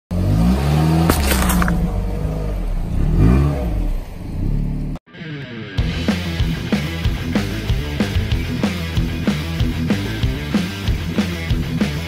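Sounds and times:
car engine revving: 0.1s - 5.0s
watermelon cracking: 1.1s - 1.8s
music: 5.1s - 12.0s.

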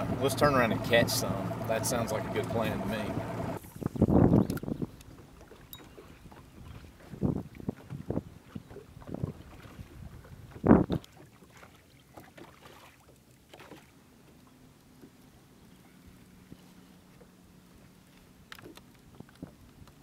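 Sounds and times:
waves lapping at a boat: 0.0s - 20.0s
wind on microphone: 3.6s - 5.1s, 6.0s - 11.0s.

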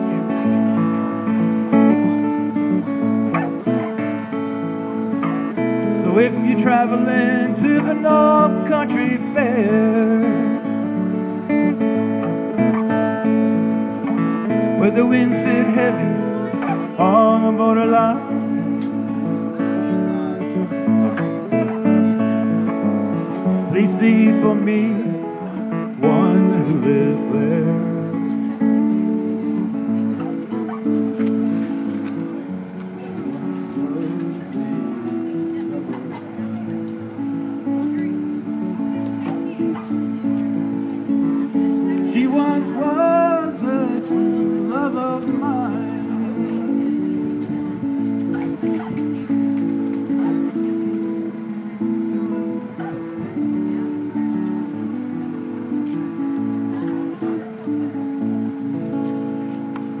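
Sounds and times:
acoustic guitar chords: 0.0s - 60.0s.

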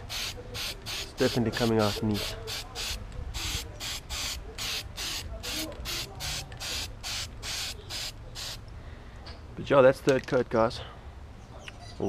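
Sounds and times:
aerosol can spraying bursts: 0.1s - 8.6s.

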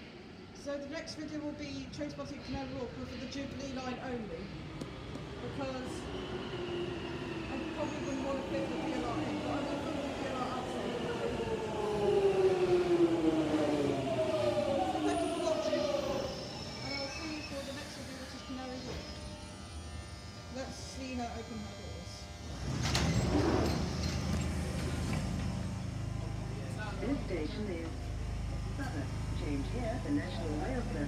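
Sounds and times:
low hum from standing train: 0.0s - 31.0s
train braking: 3.0s - 28.5s
train motor whine falling in pitch: 4.7s - 30.8s
train doors sliding open: 22.6s - 25.6s.

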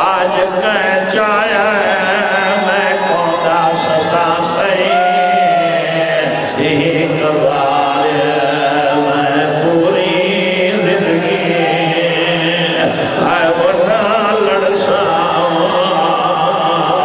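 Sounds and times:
man chanting a lament: 0.0s - 17.0s.

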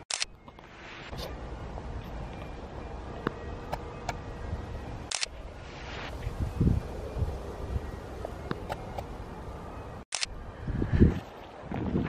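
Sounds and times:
low outdoor rumble: 1.2s - 11.7s
camera shutter click: 5.1s - 5.3s.

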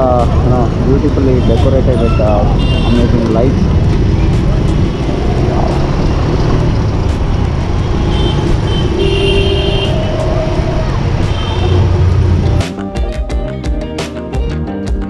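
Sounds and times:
rumble of traffic engines: 0.0s - 12.7s.

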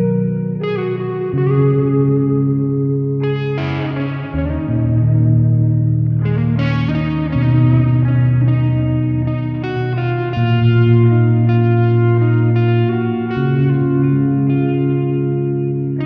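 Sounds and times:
progressive rock guitar chords: 0.0s - 16.0s.

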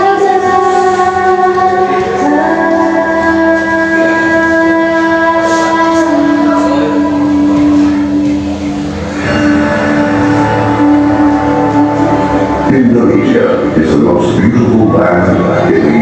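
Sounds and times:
dance music of long held notes: 0.0s - 16.0s.

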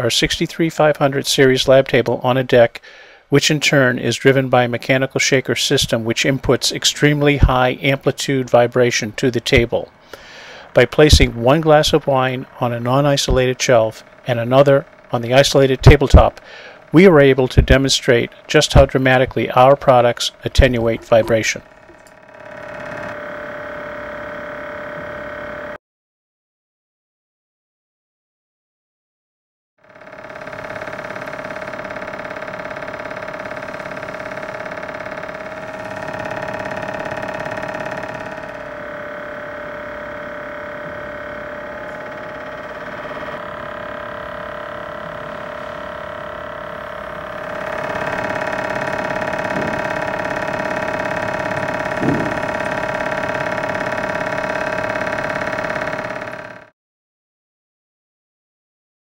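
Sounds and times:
vibration shaker whining: 0.0s - 25.8s, 29.8s - 56.7s.

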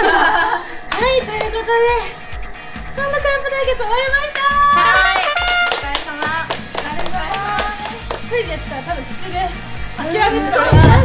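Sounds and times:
background music: 0.0s - 11.0s
people clapping: 0.9s - 1.6s, 4.2s - 8.5s.

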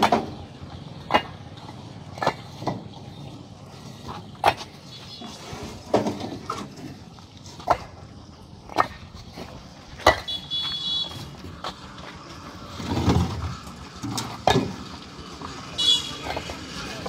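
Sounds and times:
bricks clacking together: 1.0s - 2.9s, 5.7s - 10.3s
passing vehicle: 6.9s - 17.0s.

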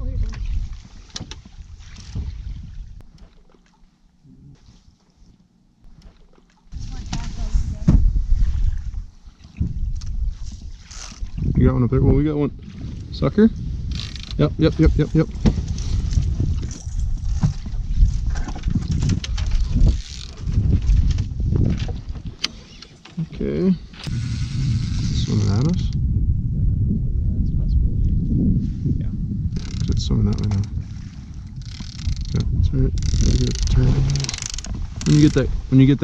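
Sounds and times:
steady low rumble: 23.4s - 31.6s.

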